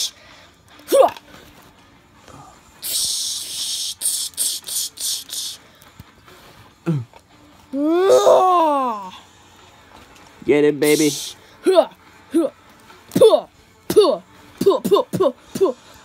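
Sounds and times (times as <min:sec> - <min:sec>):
person making hissing mouth sounds: 0:00.0 - 0:00.2, 0:02.3 - 0:05.8, 0:10.8 - 0:12.5, 0:13.1 - 0:16.0.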